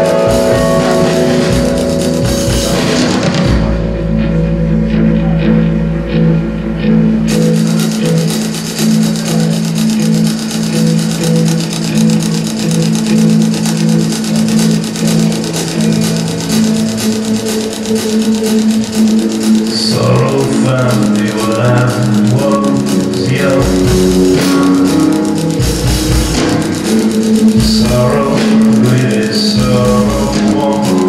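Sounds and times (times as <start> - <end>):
drums and cymbals: 0.0 - 4.0, 7.3 - 31.0
electric guitar and bass notes: 0.0 - 31.0.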